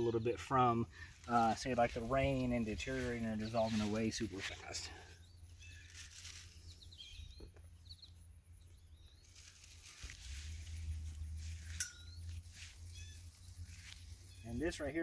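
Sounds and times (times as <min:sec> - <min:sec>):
low steady rumble: 0:00.0 - 0:15.0
bird chirps: 0:05.1 - 0:09.9, 0:11.2 - 0:14.9.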